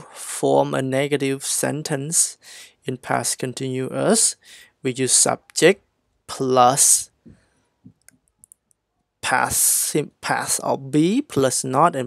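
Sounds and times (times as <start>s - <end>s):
person speaking: 0.0s - 7.3s, 9.2s - 12.0s.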